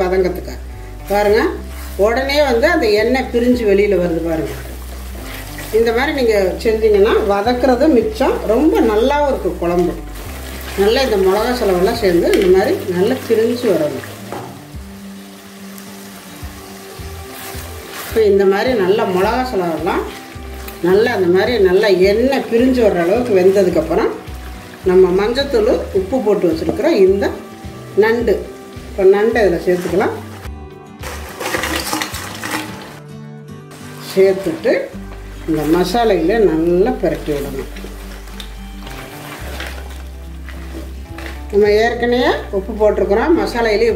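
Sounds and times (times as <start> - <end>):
background music: 0.0 - 43.9
masala sizzling in oil: 0.0 - 43.9
wooden spatula stirring: 1.0 - 14.8, 16.0 - 33.0, 33.7 - 42.5
person talking: 20.8 - 24.2, 34.0 - 37.8, 41.5 - 43.9.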